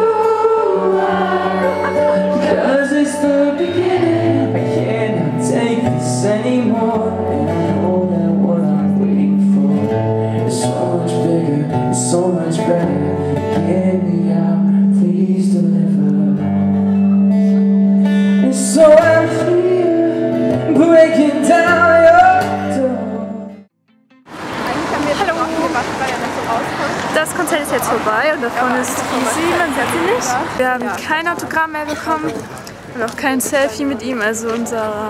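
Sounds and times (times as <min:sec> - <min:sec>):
man singing: 0:00.0 - 0:16.9, 0:18.3 - 0:23.7
acoustic guitar: 0:00.0 - 0:35.0.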